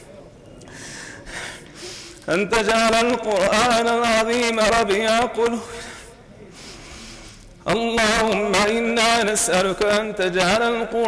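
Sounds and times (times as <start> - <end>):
man gasping in-breath: 0.7 - 2.2.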